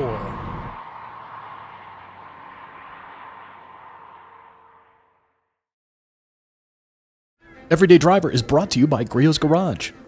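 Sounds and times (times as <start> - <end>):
car engine and tyre noise: 0.0 - 5.7.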